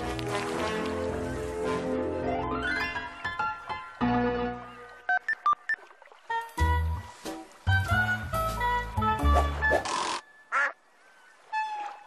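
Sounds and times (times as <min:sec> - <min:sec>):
nasal quack-like sound: 0:09.7 - 0:10.8.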